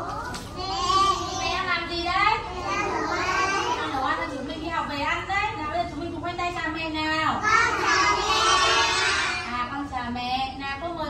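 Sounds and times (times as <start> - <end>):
young children's sing-song voices: 0.0 - 4.1, 7.4 - 9.5.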